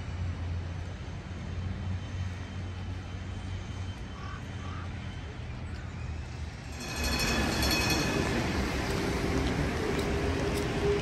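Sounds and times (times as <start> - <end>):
wheels on wet road: 6.7 - 11.0.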